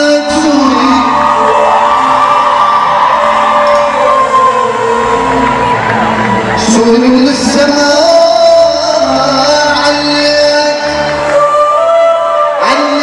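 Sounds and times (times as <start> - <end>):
crowd cheering and whooping: 0.0 - 13.0
live band music: 0.0 - 13.0.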